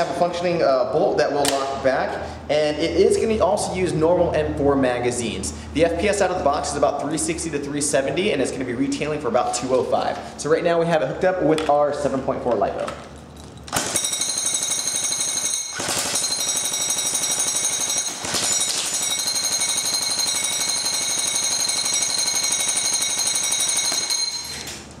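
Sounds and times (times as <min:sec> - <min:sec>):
airsoft gun firing full-auto: 0:13.7 - 0:24.2.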